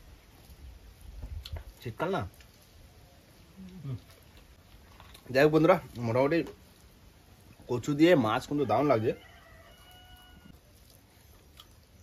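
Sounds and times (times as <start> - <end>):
faint rooster crowing: 8.4 - 10.6.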